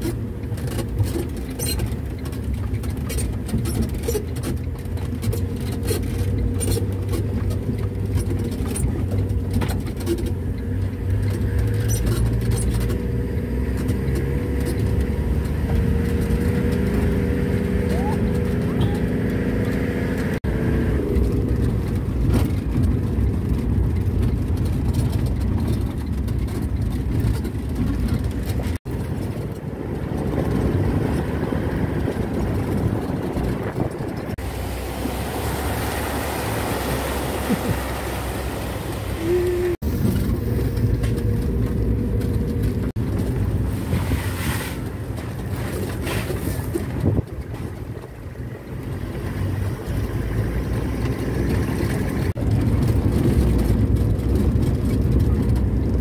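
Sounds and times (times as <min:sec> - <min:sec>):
rattles and knocks: 0:00.0 - 0:17.2, 0:21.2 - 0:35.4, 0:44.8 - 0:56.0
vehicle engine drone: 0:00.0 - 0:56.0.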